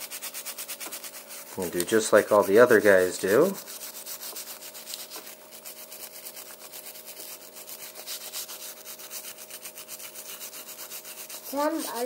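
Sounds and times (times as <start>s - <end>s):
wire brush scrubbing metal: 0.0s - 12.0s.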